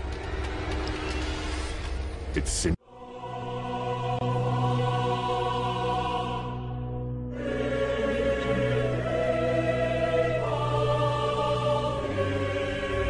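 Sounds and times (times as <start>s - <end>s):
choir singing sustained chords: 2.8s - 13.0s.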